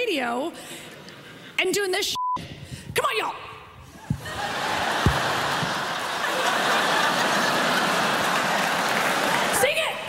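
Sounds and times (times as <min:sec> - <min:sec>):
audience laughing: 0:04.1 - 0:09.5
audience applauding: 0:04.3 - 0:09.8.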